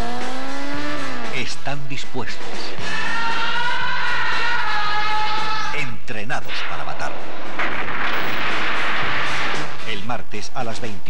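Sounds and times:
explosion rushing blast: 0:06.6 - 0:09.9.

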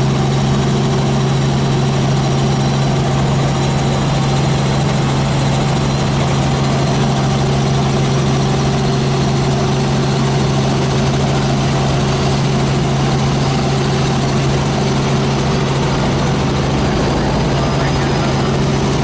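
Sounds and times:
helicopter engine and rotor drone: 0:00.0 - 0:19.0.

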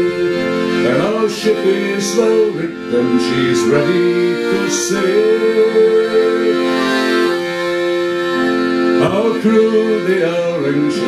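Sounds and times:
person singing folk song: 0:00.0 - 0:07.4, 0:08.9 - 0:11.0
accordion playing chords: 0:00.0 - 0:11.0.

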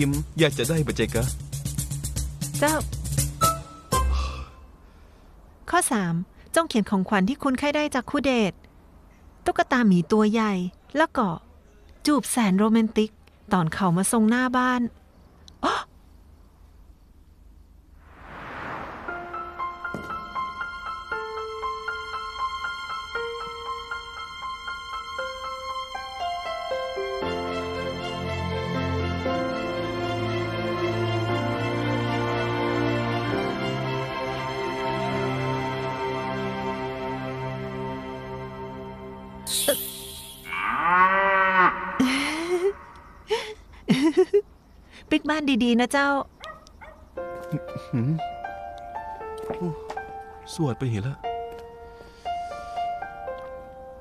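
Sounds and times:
background music: 0:00.0 - 0:04.7, 0:19.0 - 0:40.5, 0:47.2 - 0:54.0
short rising vocal sound: 0:18.0 - 0:19.6
comic cow moo: 0:40.4 - 0:43.1.

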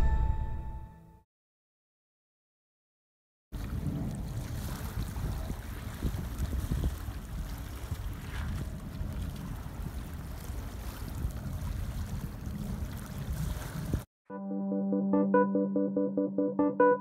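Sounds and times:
calm water on pebble beach: 0:03.6 - 0:14.1
wind buffeting microphone: 0:03.6 - 0:14.1.

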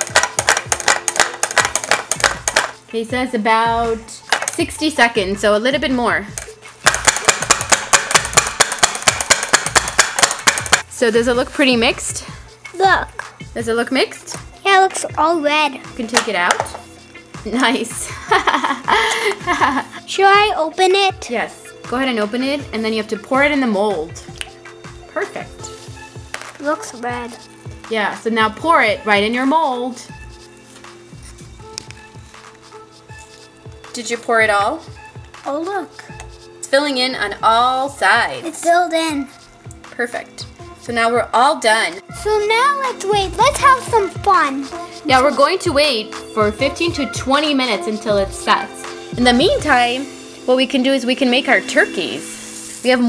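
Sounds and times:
plastic toy clacking rapidly: 0:00.0 - 0:02.7, 0:06.9 - 0:10.8
quiet background music: 0:00.0 - 0:53.0.

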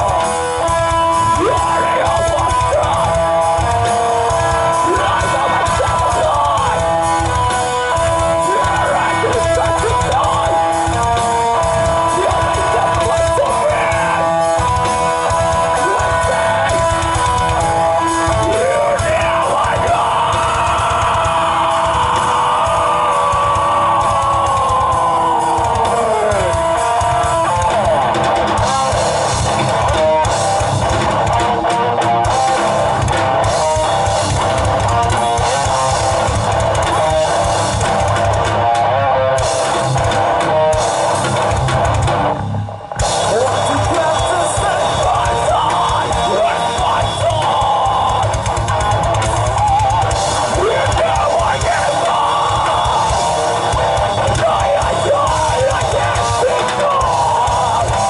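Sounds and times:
heavy metal band playing: 0:00.0 - 0:58.0.

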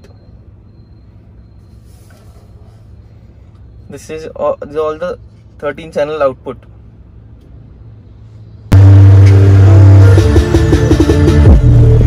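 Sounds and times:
loud music with deep bass: 0:08.7 - 0:12.0.

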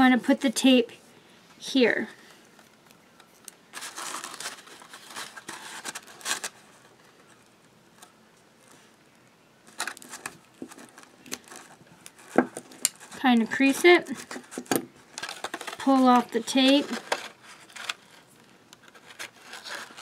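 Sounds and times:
cardstock rustling and crinkling: 0:02.5 - 0:08.9, 0:09.6 - 0:20.0.

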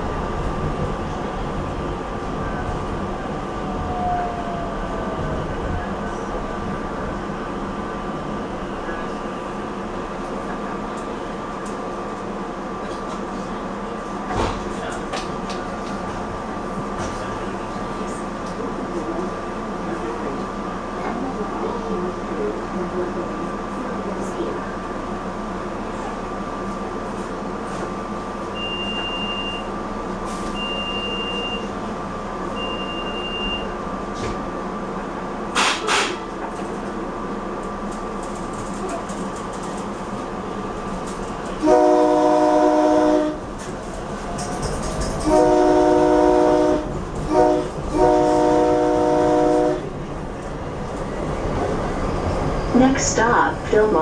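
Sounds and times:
electrical hum of railcar: 0:00.0 - 0:54.0
train horn blasts: 0:41.6 - 0:43.4, 0:45.2 - 0:49.9.

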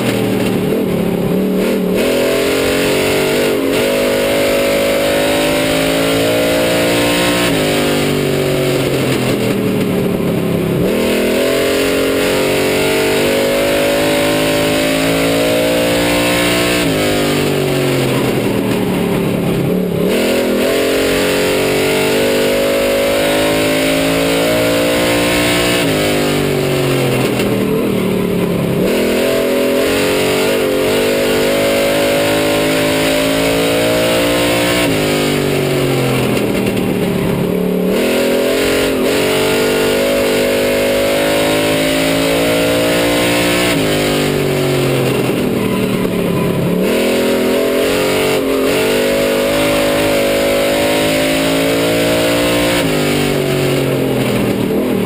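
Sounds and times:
race car engine at speed: 0:00.0 - 0:55.0.

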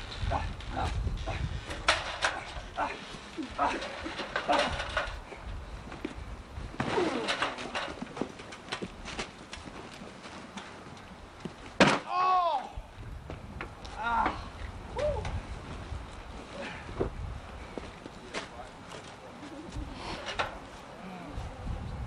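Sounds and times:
hits and thuds of bodies: 0:11.7 - 0:12.2
people yelling and crying out: 0:12.0 - 0:12.9.

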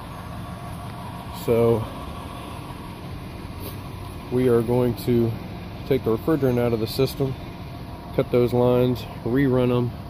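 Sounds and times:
air conditioning units humming: 0:00.0 - 0:10.0
faint steady whine: 0:00.0 - 0:10.0.

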